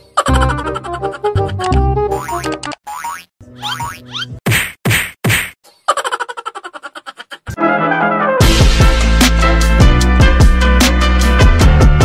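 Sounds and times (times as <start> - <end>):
loud whacks: 4.4 - 5.6.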